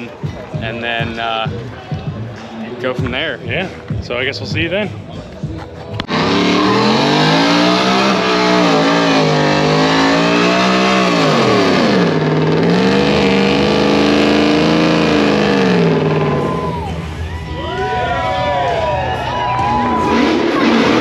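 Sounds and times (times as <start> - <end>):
engine revving high: 6.0 - 17.2, 18.9 - 21.0.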